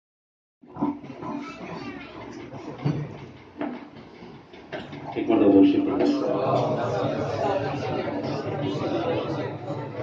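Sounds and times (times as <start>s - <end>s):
man speaking over loudspeaker: 5.1s - 7.1s.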